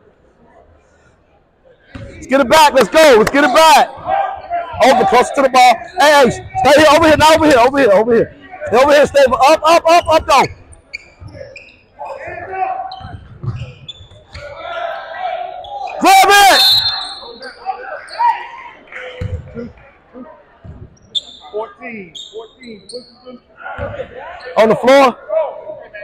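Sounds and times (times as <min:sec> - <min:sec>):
sneakers squeaking: 0:01.9 - 0:07.8, 0:08.6 - 0:19.7, 0:20.6 - 0:24.9
voices calling out: 0:02.0 - 0:20.2.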